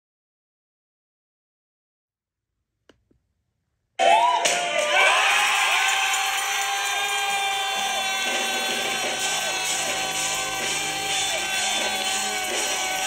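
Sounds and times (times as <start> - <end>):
church band music: 6.6 - 13.0.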